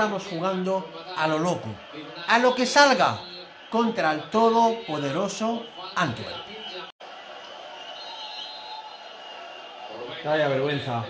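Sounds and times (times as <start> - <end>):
football commentary from television: 0.0 - 11.0.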